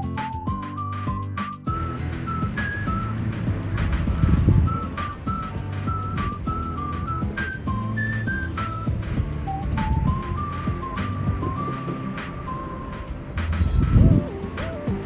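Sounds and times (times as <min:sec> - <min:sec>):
light tune with whistle-like melody: 0:00.0 - 0:15.0
low rumble: 0:01.7 - 0:15.0.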